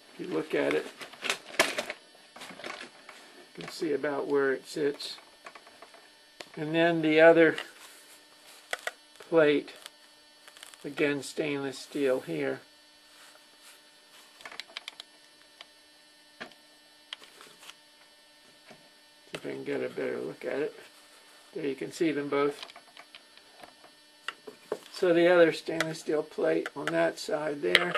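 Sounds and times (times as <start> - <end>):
faint electrical hum: 0.0 - 27.9
sharp clicks and knocks: 14.4 - 15.7.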